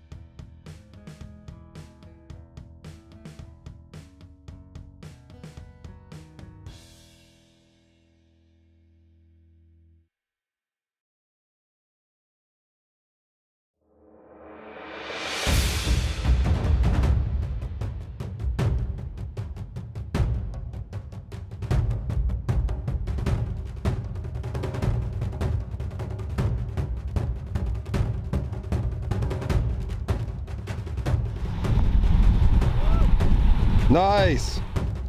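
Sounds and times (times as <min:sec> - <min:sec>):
drum and percussion music with bass: 0:00.0 - 0:07.0, 0:15.5 - 0:35.0.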